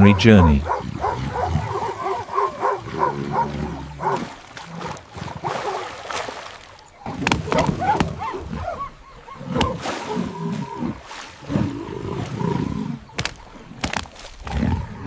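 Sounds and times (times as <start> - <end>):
higher yelping calls: 0.0 - 4.6, 6.8 - 10.8
deep roaring growls: 0.0 - 5.9, 7.0 - 13.1, 14.4 - 15.0.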